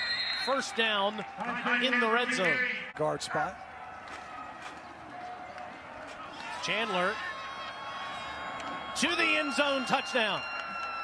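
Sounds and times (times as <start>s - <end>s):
low crowd noise: 1.0s - 11.0s.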